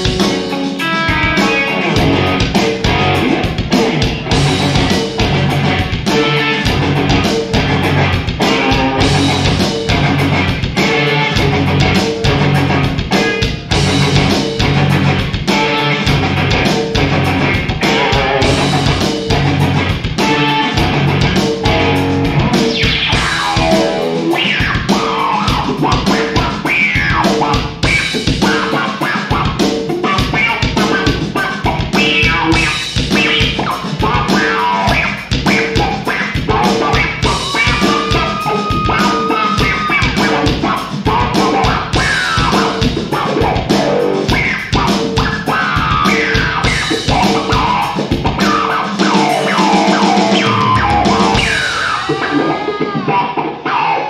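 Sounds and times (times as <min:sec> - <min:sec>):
steady drum beat: 0:00.0 - 0:53.4
electric guitar: 0:00.0 - 0:54.0.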